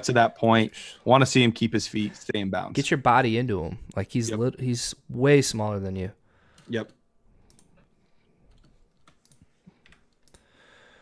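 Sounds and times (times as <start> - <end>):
keyboard typing clicks: 7.4 - 7.8.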